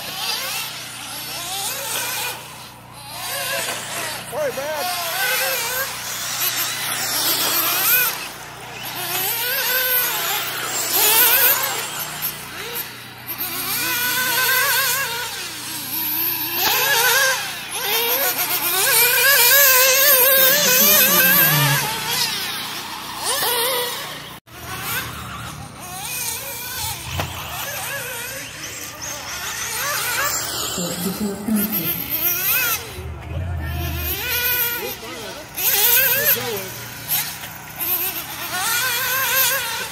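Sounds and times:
high-revving nitro engine: 0.0 - 39.9.

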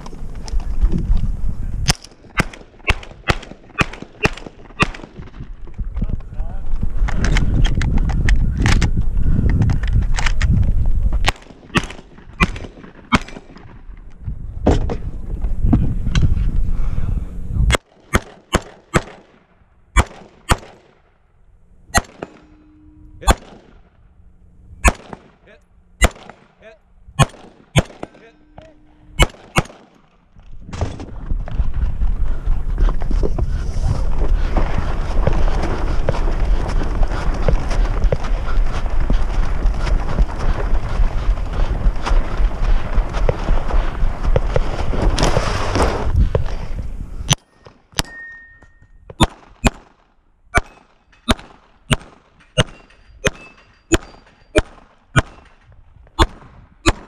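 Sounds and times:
shotgun firing: 1.9 - 5.4, 11.2 - 13.8, 17.7 - 19.4, 20.0 - 21.0, 22.0 - 22.5, 23.2 - 23.9, 24.8 - 26.6, 27.2 - 30.1, 49.2 - 50.0, 50.6 - 55.6, 56.2 - 57.0
rifle shots: 1.9 - 5.5, 11.2 - 13.8, 17.7 - 19.4, 20.0 - 21.1, 21.9 - 22.6, 23.2 - 23.9, 24.8 - 26.6, 27.2 - 30.2, 49.2 - 55.6, 56.2 - 57.0
loud low rumble: 21.7 - 26.0, 26.7 - 29.6.

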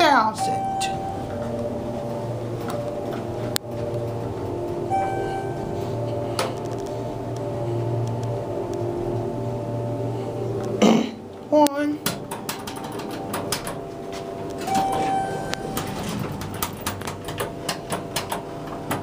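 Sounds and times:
elevator hum: 0.0 - 19.0.

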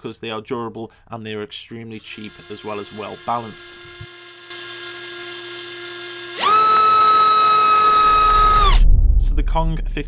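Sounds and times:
electric motor high whine: 2.0 - 8.8.

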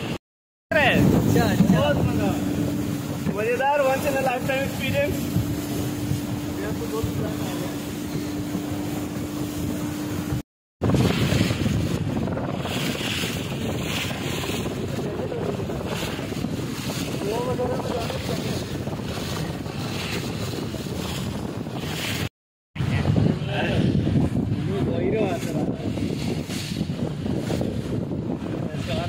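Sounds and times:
motorboat engine hum: 0.0 - 29.0
water rushing past: 0.0 - 29.0
wind buffeting microphone: 0.0 - 29.0.

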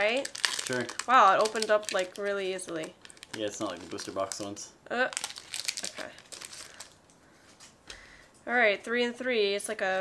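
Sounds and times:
foil wrapper crinkling: 0.0 - 7.0.

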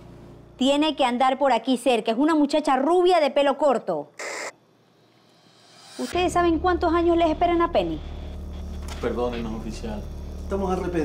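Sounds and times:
walkie-talkie static burst: 4.2 - 4.6.

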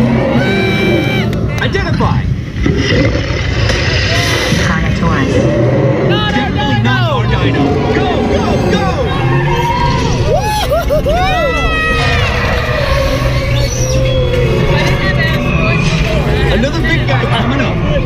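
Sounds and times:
high arching cries: 0.0 - 1.6, 7.6 - 17.1
low rumble of ride vehicle: 4.1 - 18.0.

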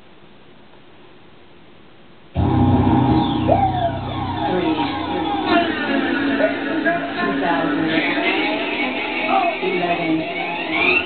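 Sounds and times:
loud pop music: 2.4 - 11.0.

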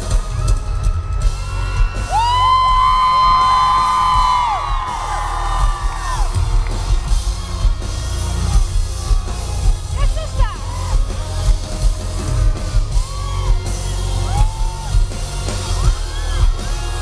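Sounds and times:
audience whooping: 0.0 - 17.0
bass guitar: 0.0 - 17.0
heavy drums: 0.0 - 17.0
live rock band playing: 0.0 - 17.0.

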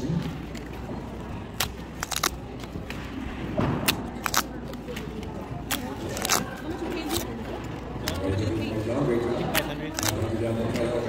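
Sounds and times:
background chatter: 0.0 - 11.0
paper tickets tearing: 1.5 - 2.8, 3.8 - 8.3, 9.5 - 10.9.

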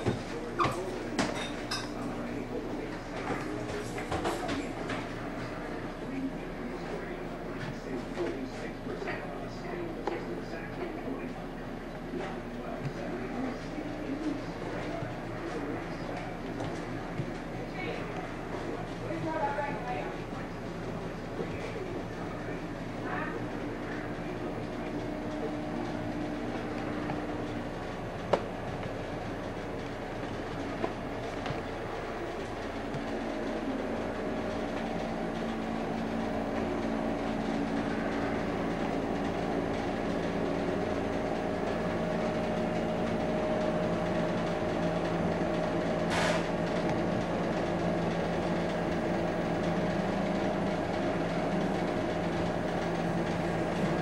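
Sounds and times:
mechanical hum with held tones: 0.0 - 54.0.

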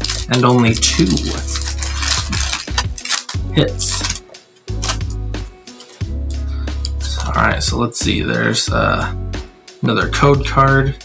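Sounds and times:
foil wrapper crinkling and tearing: 0.0 - 6.0.

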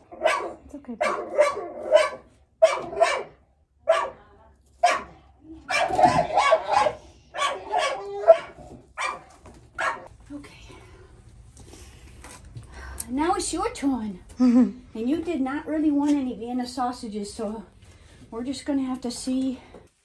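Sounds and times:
dog barking: 0.0 - 4.2, 4.8 - 10.1.

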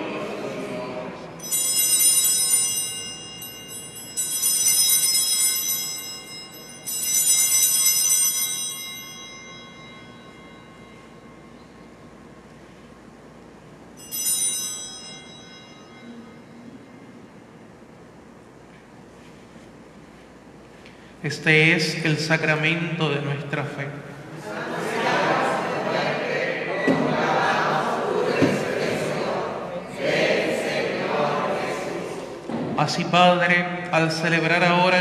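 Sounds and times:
altar bells ringing: 0.9 - 17.6.

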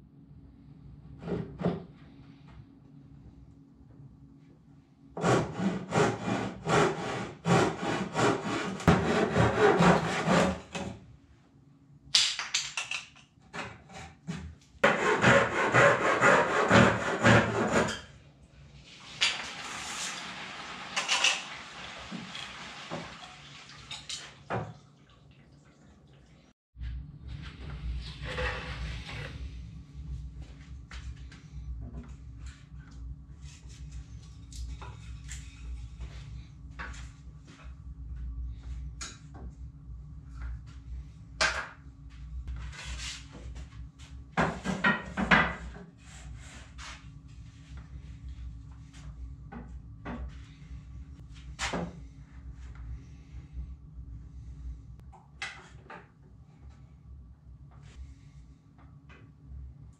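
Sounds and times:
low steady hum: 0.0 - 12.2, 23.2 - 59.9
handsaw cutting wood: 5.2 - 10.7, 14.8 - 18.0.

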